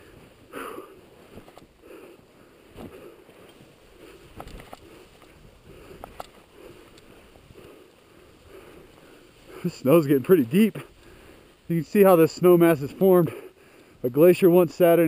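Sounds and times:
breathing: 0:00.0 - 0:09.8, 0:10.8 - 0:11.7, 0:13.2 - 0:14.0
boots crunching through snow: 0:00.0 - 0:13.0.

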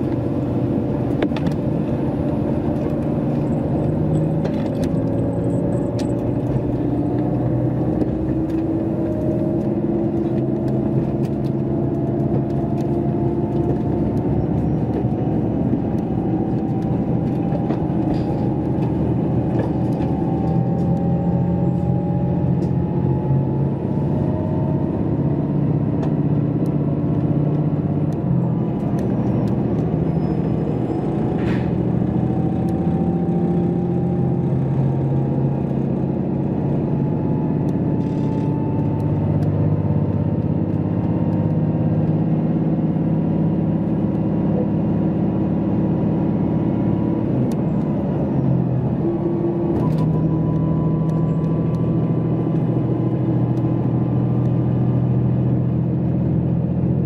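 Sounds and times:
train wheels rumbling on rails: 0:00.0 - 0:44.8
diesel engine drone: 0:00.0 - 0:57.0.

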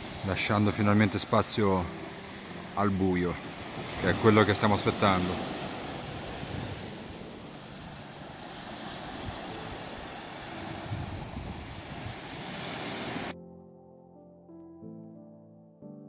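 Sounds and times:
waves breaking on a beach: 0:00.0 - 0:13.4
soft music with held notes: 0:00.0 - 0:16.0.

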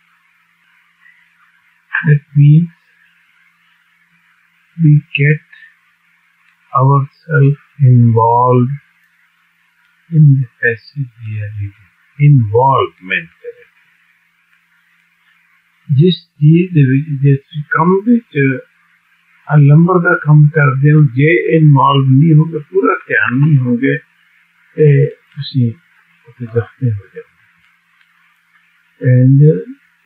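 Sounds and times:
recording hiss: 0:00.0 - 0:30.0
man speaking: 0:02.0 - 0:02.8, 0:04.8 - 0:05.6, 0:06.8 - 0:08.8, 0:10.1 - 0:13.6, 0:15.9 - 0:18.6, 0:19.5 - 0:24.0, 0:24.8 - 0:27.2, 0:29.0 - 0:29.8
man talking: 0:02.0 - 0:02.8, 0:04.8 - 0:05.6, 0:06.8 - 0:08.8, 0:10.1 - 0:13.6, 0:15.9 - 0:18.6, 0:19.5 - 0:24.0, 0:24.8 - 0:27.2, 0:29.0 - 0:29.8
low hum: 0:06.4 - 0:08.8, 0:09.8 - 0:18.6, 0:19.3 - 0:29.8.

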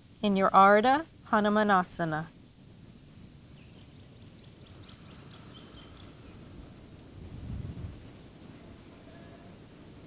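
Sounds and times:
low outdoor rumble: 0:00.0 - 0:10.0
faint bird chirping: 0:03.3 - 0:06.6.

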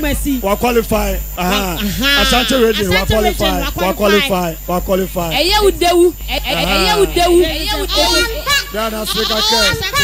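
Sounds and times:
man announcing loudly: 0:00.0 - 0:05.5, 0:06.5 - 0:10.0.

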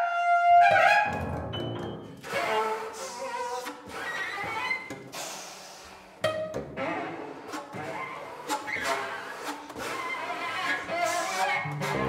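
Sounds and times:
chamber music: 0:00.7 - 0:02.5.

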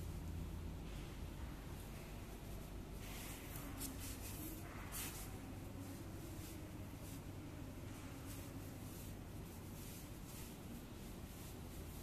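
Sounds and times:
climbing rope rustling and sliding: 0:00.0 - 0:12.0
faint low hum: 0:00.0 - 0:12.0.

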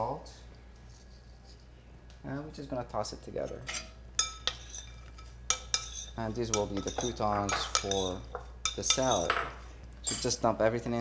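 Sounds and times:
glass bowl clinking: 0:03.7 - 0:10.4.

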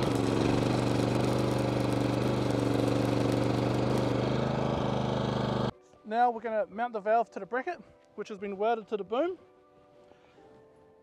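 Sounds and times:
welding arc buzzing and crackling: 0:00.0 - 0:05.7.

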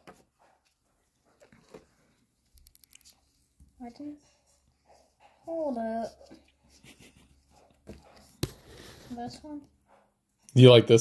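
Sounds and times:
cards rustling: 0:01.4 - 0:03.6.

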